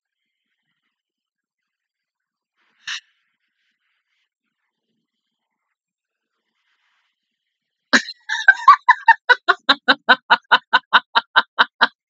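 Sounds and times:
person laughing: 0:08.0 - 0:12.0.

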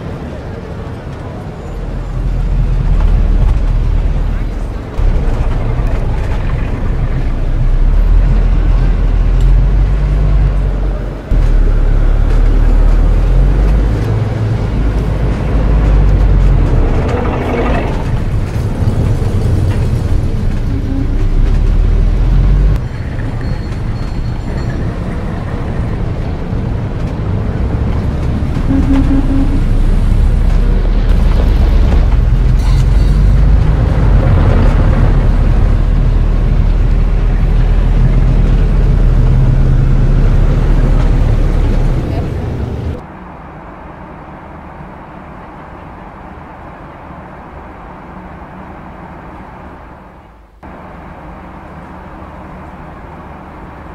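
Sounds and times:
traffic rumble: 0:00.0 - 0:53.9
short tones: 0:28.7 - 0:29.7.

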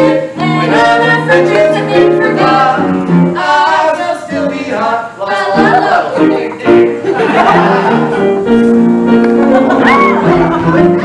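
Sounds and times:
man and woman singing duet: 0:00.0 - 0:08.2
piano accompaniment: 0:00.0 - 0:11.0.

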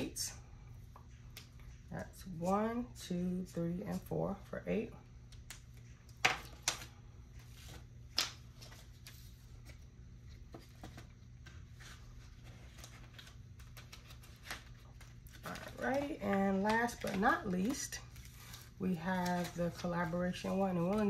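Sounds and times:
low steady hum: 0:00.0 - 0:21.0
paper rustling and tapping: 0:10.4 - 0:21.0.

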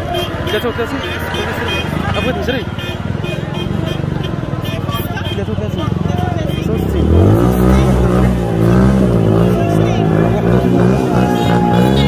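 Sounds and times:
crowd voices: 0:00.0 - 0:12.0
motorbike engine revving: 0:00.0 - 0:12.0.

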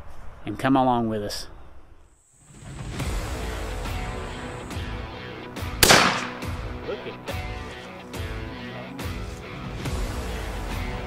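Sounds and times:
background music: 0:02.6 - 0:11.0
shotgun shot: 0:05.8 - 0:06.6.

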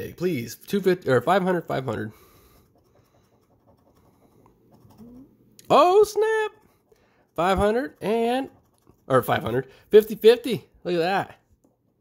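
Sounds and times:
scratching lottery ticket coating: 0:01.1 - 0:10.4.

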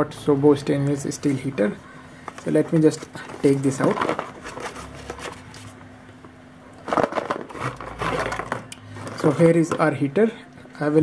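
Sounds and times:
rustling and scraping handling noise: 0:00.8 - 0:10.0.

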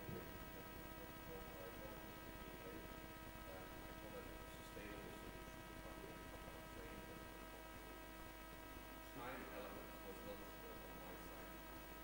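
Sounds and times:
electrical mains hum: 0:00.0 - 0:12.0
steady electrical whine: 0:00.0 - 0:12.0.

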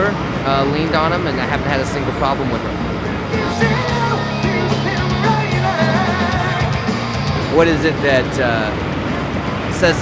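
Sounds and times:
low bass notes: 0:00.0 - 0:10.0
person singing: 0:03.3 - 0:07.0
heavy rock band playing: 0:03.3 - 0:09.5.

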